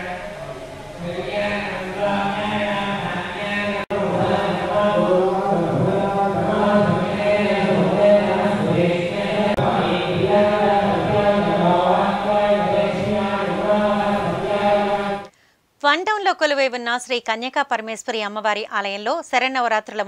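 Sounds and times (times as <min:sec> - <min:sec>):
mantra chanting: 0:00.0 - 0:15.3.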